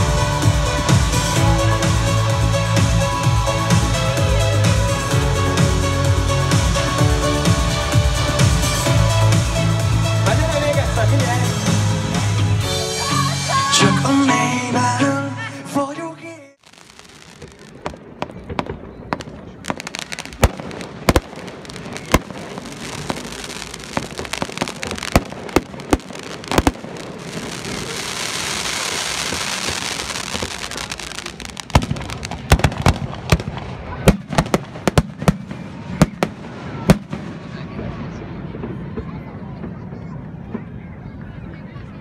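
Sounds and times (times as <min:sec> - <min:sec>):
fireworks hissing crackle: 0:16.6 - 0:38.2
fireworks bangs: 0:16.6 - 0:41.8.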